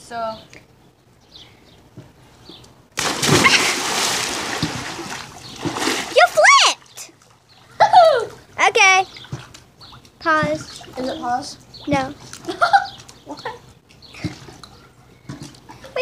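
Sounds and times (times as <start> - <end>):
person splashing into pool: 3.0 - 6.5
water churning: 3.0 - 7.7.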